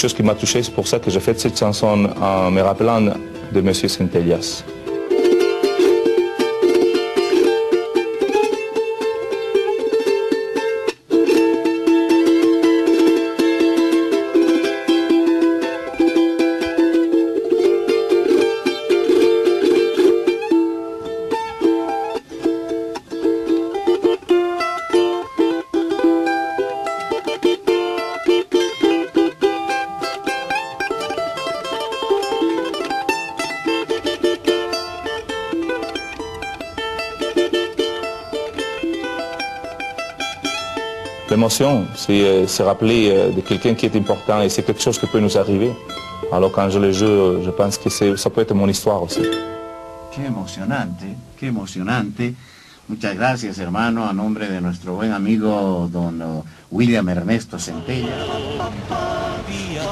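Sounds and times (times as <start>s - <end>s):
charango melody: 0.0s - 59.9s.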